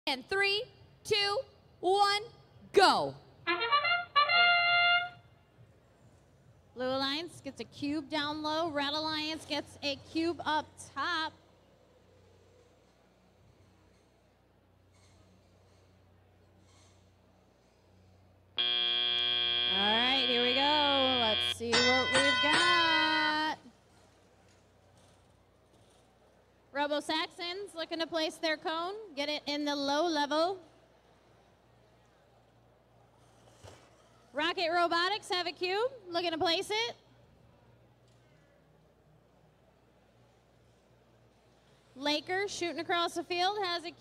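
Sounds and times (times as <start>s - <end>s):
brass-like horn call: 3.5s - 5.2s, 18.6s - 21.6s
electronic shifting tones: 18.6s - 21.6s
field buzzer: 18.6s - 22.7s.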